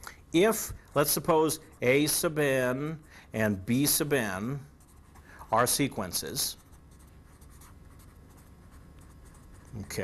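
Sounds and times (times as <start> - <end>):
pen scratching while writing: 4.7 - 10.0.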